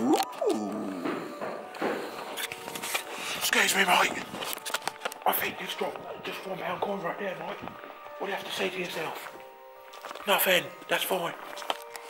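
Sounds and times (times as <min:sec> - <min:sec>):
footsteps on hard floor: 0:00.8 - 0:12.0.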